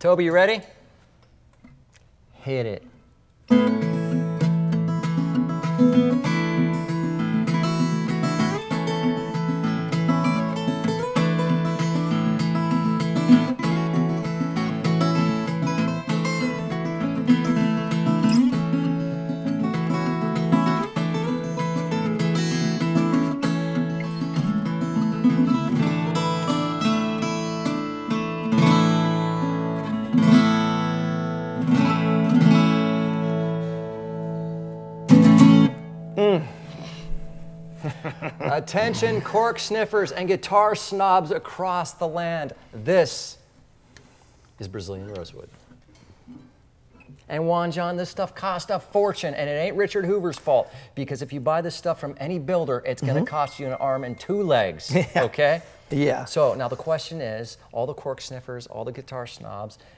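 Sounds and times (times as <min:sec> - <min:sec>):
acoustic guitar duet: 0:03.4 - 0:42.7, 0:43.8 - 0:47.4, 0:51.6 - 0:57.4.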